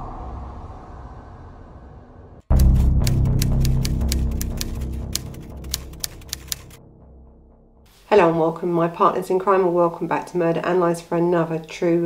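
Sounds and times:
low intro music: 2.4 - 8.1
typewriter key clacks: 2.6 - 6.8.

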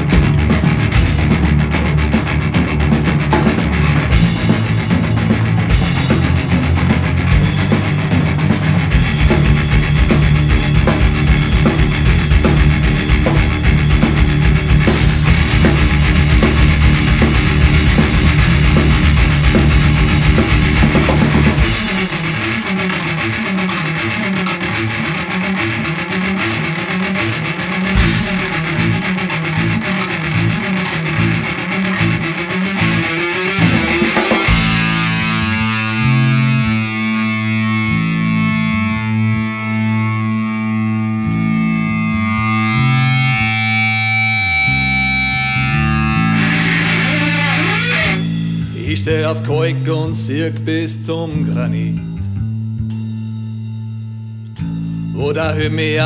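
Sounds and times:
instrumental rock music with guitar: 0.0 - 56.0.

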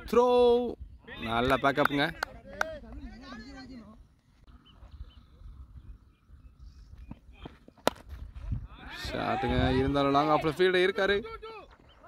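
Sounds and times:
cricket bat striking ball: 7.7 - 8.1.

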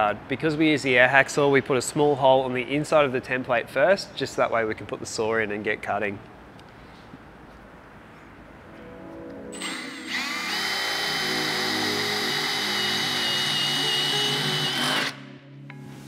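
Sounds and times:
background music: 8.6 - 16.0
cordless drill whining: 9.6 - 15.2.

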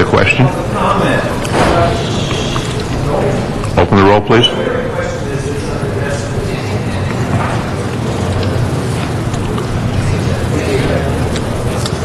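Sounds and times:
background chatter: 0.0 - 12.0
steady low hum: 0.0 - 12.0.

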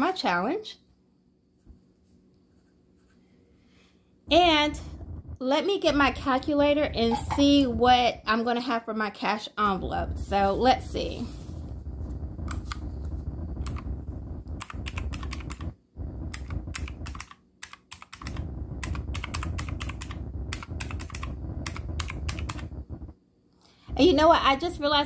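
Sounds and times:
calculator keys clicking: 14.6 - 15.7, 16.3 - 22.6.

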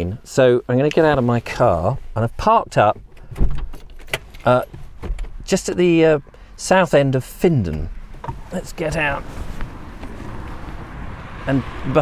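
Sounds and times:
car door opening click and thud: 2.7 - 5.6.

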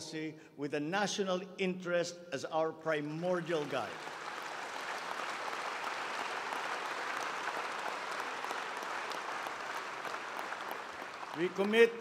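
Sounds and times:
audience applauding: 3.6 - 12.0.

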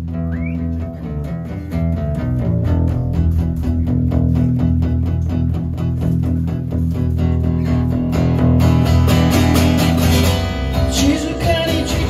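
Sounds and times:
acoustic guitar strumming: 0.0 - 12.0
sustained low bass notes: 0.0 - 12.0.

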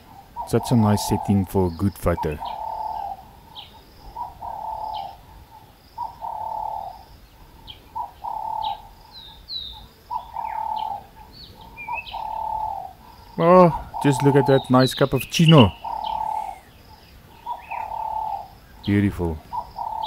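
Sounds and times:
dove cooing: 0.0 - 20.0
small birds chirping: 0.0 - 20.0.

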